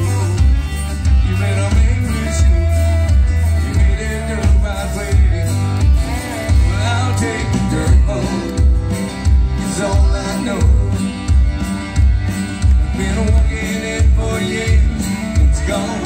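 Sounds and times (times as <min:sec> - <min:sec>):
live country band music: 0:00.0 - 0:16.0.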